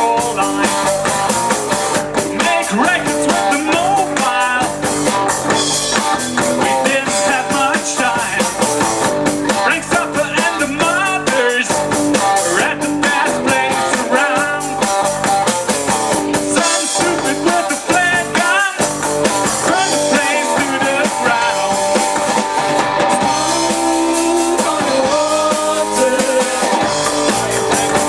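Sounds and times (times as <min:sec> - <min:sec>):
drum kit with cymbals: 0:00.0 - 0:28.0
electric guitars: 0:00.0 - 0:28.0
live rock band playing: 0:00.0 - 0:28.0.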